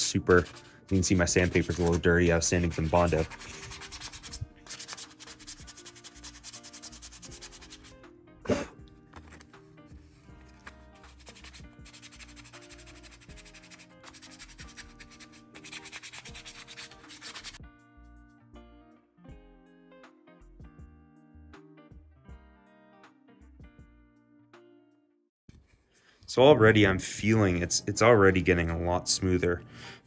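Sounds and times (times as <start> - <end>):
sandpaper rubbing on plastic: 0.0 - 7.9, 10.5 - 17.6
soft background music: 0.0 - 30.0.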